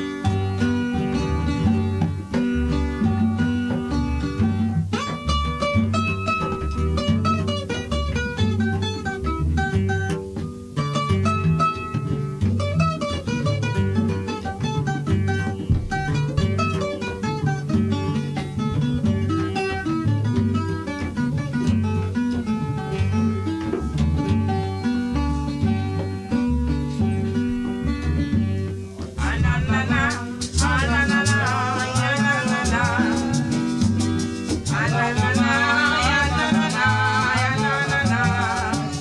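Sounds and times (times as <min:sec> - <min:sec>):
bass line: 0:00.0 - 0:39.0
instrumental latin string music: 0:00.0 - 0:39.0
plucked string melodic runs: 0:00.0 - 0:39.0.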